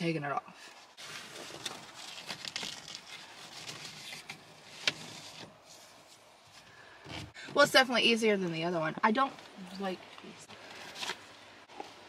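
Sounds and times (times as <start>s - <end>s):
cover rustling against steering wheel: 0.9s - 7.4s.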